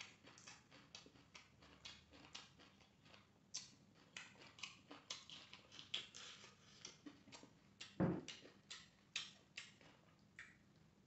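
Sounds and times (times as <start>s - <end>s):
man chewing with lip smacks: 0.0s - 10.8s
low thump: 8.0s - 8.2s.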